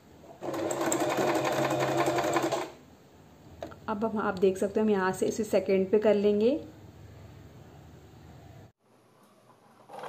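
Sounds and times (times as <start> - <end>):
electric sewing machine running: 0.4 - 2.7.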